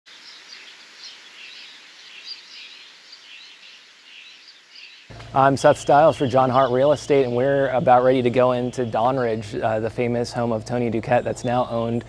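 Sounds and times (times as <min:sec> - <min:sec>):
birds chirping: 0:00.1 - 0:12.0
faint outdoor hiss: 0:00.1 - 0:12.0.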